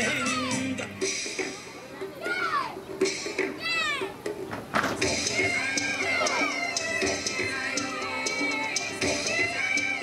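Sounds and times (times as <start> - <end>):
quiet rhythmic background music: 0.0 - 10.0.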